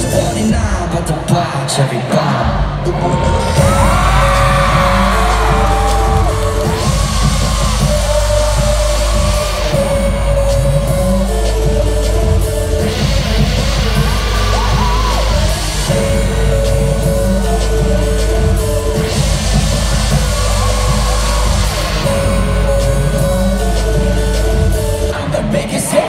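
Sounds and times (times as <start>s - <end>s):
pop concert music over pa: 0.0s - 26.0s
crowd yells and whoops: 2.8s - 10.8s, 14.0s - 15.7s, 19.8s - 22.6s.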